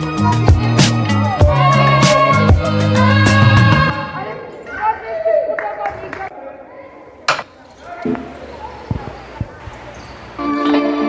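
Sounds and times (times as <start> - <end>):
sharp crack: 7.3 - 8.3.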